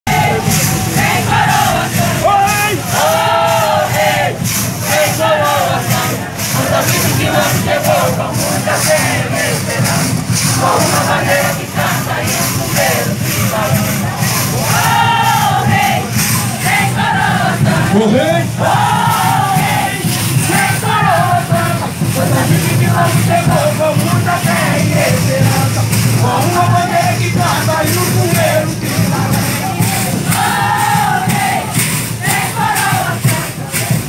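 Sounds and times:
crowd voices: 0.0 - 34.0
group singing a chant: 0.1 - 34.0
percussion beat: 0.1 - 34.0.

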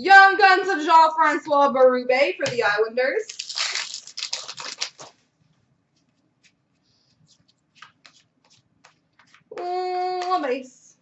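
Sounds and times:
cards flicked by hand: 7.4 - 10.5.

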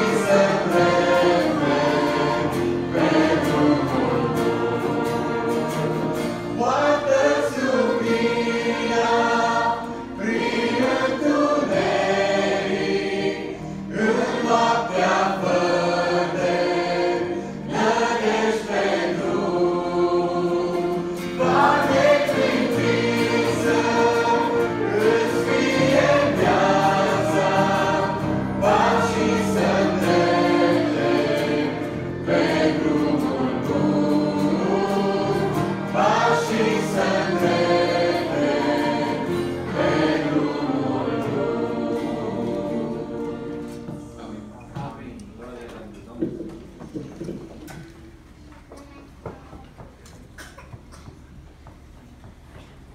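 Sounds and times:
church choir singing a hymn: 0.0 - 45.5.

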